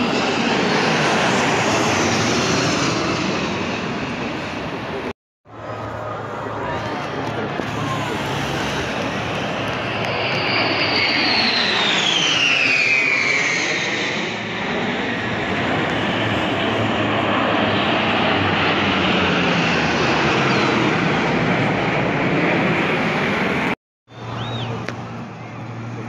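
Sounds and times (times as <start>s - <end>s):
jet engine roar: 0.0s - 26.0s.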